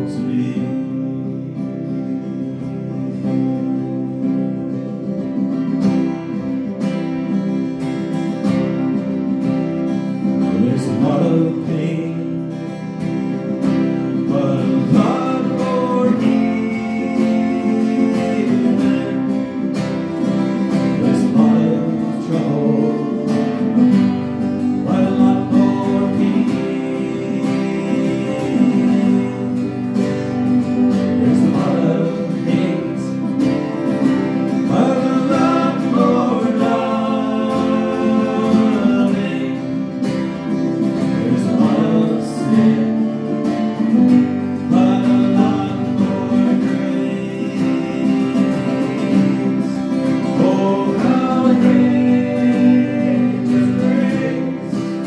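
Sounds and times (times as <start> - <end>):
acoustic guitars strummed: 0.0 - 55.0
men singing worship song: 10.5 - 12.4, 14.2 - 19.8, 20.7 - 30.4, 31.1 - 33.7, 34.5 - 40.2, 41.0 - 43.6, 44.6 - 55.0.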